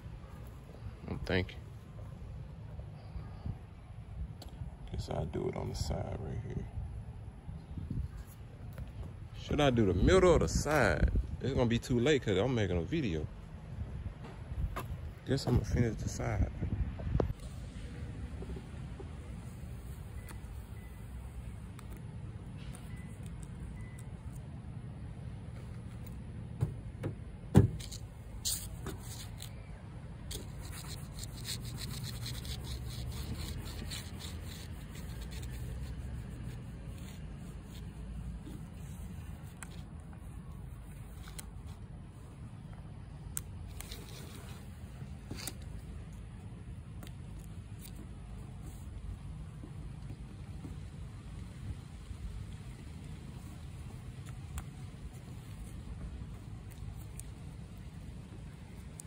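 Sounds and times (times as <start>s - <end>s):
towel rubbing tape on glass: 27.7s - 29.6s, 30.3s - 41.8s.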